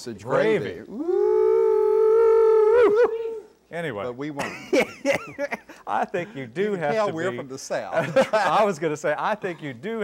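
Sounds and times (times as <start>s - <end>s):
person exclaiming in excitement: 0.9s - 3.5s.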